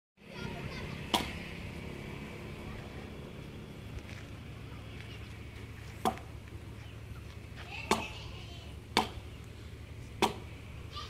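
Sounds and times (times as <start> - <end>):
low steady background noise: 0.2 - 11.0
blade chopping into log: 8.9 - 9.2, 10.2 - 10.5.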